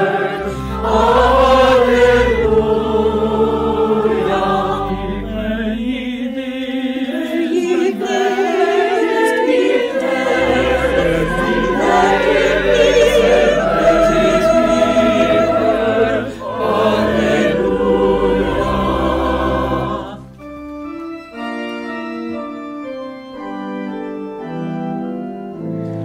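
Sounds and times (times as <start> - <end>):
choir singing with vibrato: 0.0 - 20.4
deep bass notes: 10.2 - 20.3.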